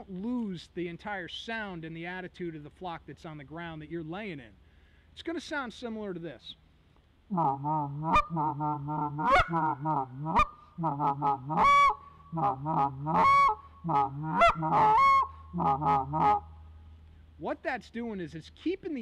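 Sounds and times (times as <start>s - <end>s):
goose call chattering notes: 7.3s - 16.5s
sharp goose call clucks: 7.3s - 16.5s.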